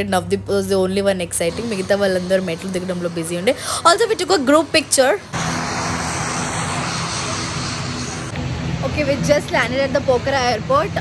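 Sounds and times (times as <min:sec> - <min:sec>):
aircraft engine noise: 0:01.4 - 0:11.0.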